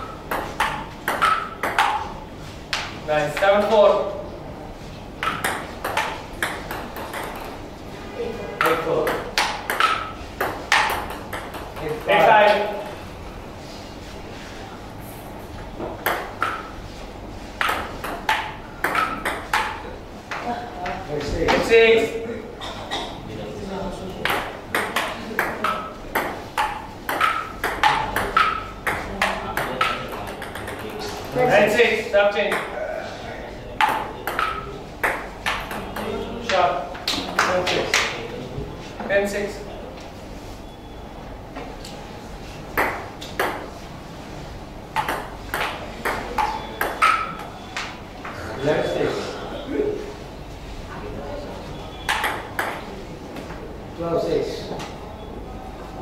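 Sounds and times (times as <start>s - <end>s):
table tennis ball pinging: 0.0s - 3.5s, 5.2s - 7.6s, 8.6s - 12.6s, 15.8s - 16.8s, 17.6s - 20.4s, 24.2s - 31.4s, 32.4s - 32.8s, 33.8s - 38.0s, 42.7s - 43.8s, 44.9s - 47.9s, 52.0s - 53.0s
table tennis ball clicking: 0.3s - 2.0s, 24.2s - 31.2s, 45.0s - 47.5s.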